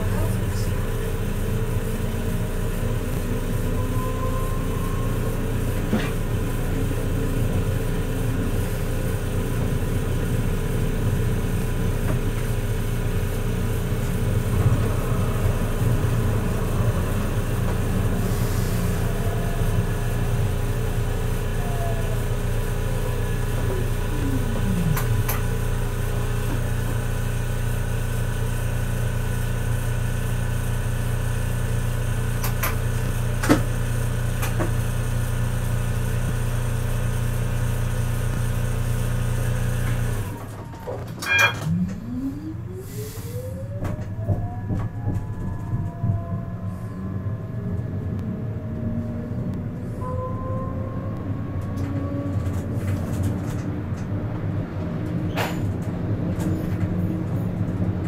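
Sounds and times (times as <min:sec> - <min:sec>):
tram drive whine: 0:00.0 - 0:58.0
tram electric hum: 0:00.0 - 0:58.0.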